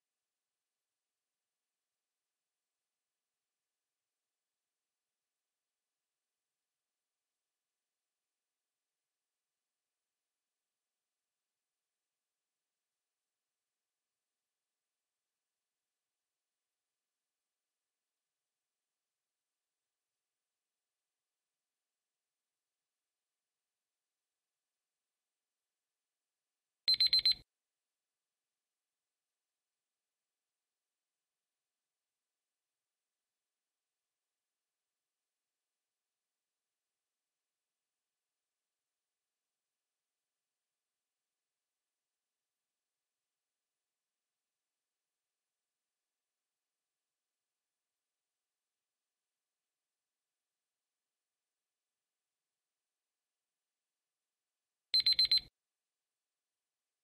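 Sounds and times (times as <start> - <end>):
timer alarm high beeps: 26.9 - 27.4, 55.0 - 55.5.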